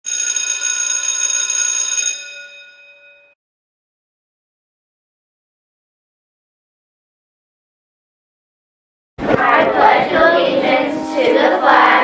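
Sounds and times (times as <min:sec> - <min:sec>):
school bell ringing: 0:00.0 - 0:03.4.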